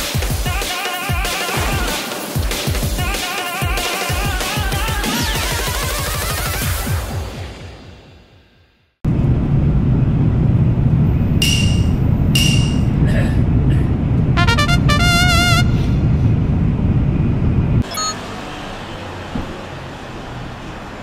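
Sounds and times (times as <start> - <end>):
train rumbling at speed: 9.1 - 17.8
station ambience: 9.1 - 18.3
short high beeps: 17.8 - 18.2.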